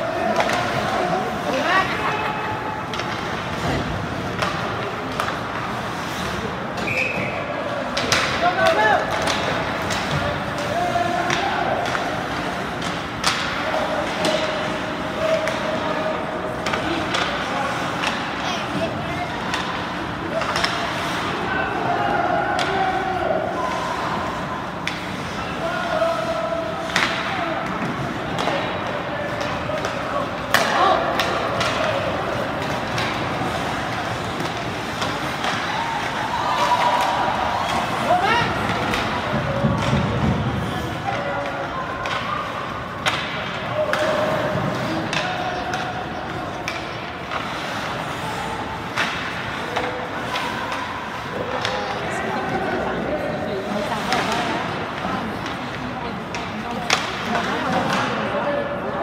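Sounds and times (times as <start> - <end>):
hockey sticks knocking puck: 0.0 - 23.2, 23.9 - 58.7
chatter of spectators: 0.0 - 59.0
puck banging off boards: 26.8 - 42.3.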